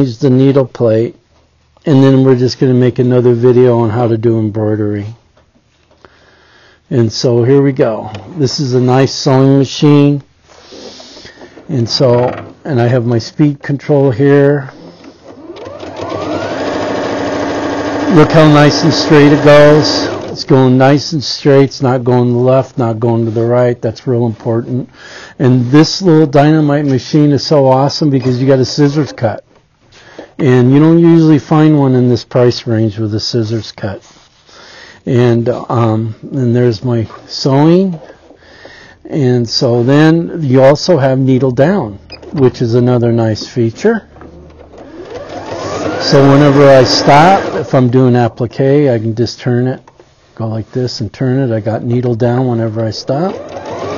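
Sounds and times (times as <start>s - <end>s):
sewing machine stitching: 14.8s - 20.5s, 44.1s - 47.9s, 52.9s - 53.9s.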